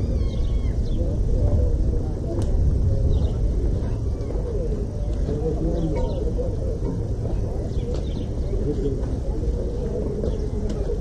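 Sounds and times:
distant indistinct voices: 0:00.0 - 0:11.0
steady low rumble: 0:00.0 - 0:11.0.

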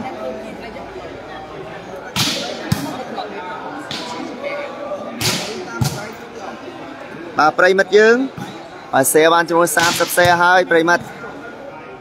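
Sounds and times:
volleyball being hit: 0:02.2 - 0:03.0, 0:03.8 - 0:04.3, 0:05.2 - 0:06.1.

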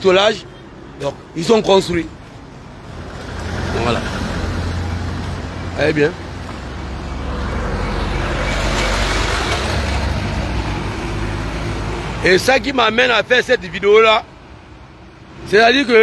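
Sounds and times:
road noise: 0:00.0 - 0:16.0.

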